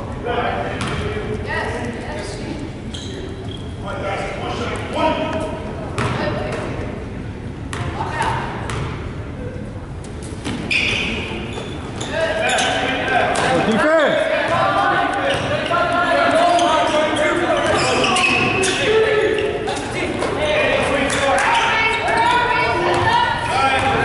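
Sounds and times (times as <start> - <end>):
voices in gym: 0.0 - 24.0
sneakers squeaking: 0.8 - 6.9, 7.7 - 24.0.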